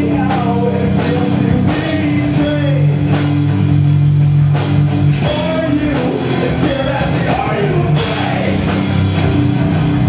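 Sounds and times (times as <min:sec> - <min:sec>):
heavy rock band playing: 0:00.0 - 0:10.0.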